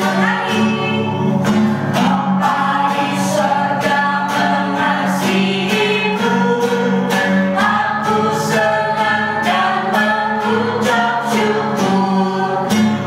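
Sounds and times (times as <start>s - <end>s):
acoustic guitar: 0.0s - 13.0s
voices singing together: 0.0s - 13.0s.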